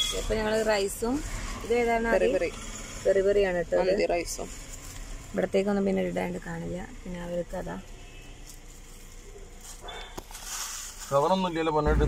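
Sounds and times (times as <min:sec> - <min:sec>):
food wrapping rustle: 0:07.9 - 0:11.6.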